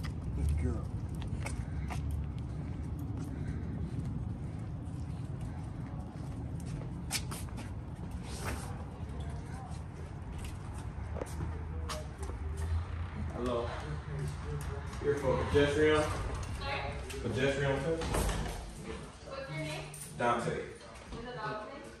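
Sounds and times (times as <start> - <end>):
footsteps on pavement: 0.0 - 17.3
steady low rumble: 0.0 - 20.5.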